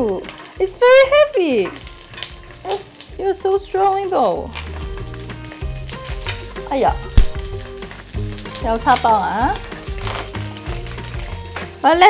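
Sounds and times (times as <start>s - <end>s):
background music: 0.0s - 12.0s
fish sizzling in a pan: 0.0s - 12.0s.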